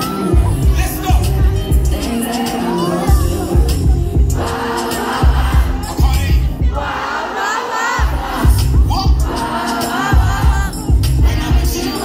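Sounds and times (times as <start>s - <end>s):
heavy bass beat: 0.0s - 7.0s, 8.0s - 12.0s
audience singing and shouting: 0.0s - 12.0s.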